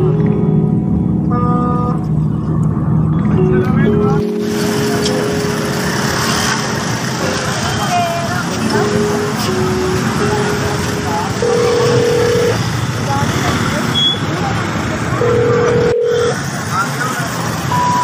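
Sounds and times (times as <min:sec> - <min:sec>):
traffic: 0:00.0 - 0:18.0
voices: 0:03.2 - 0:18.0.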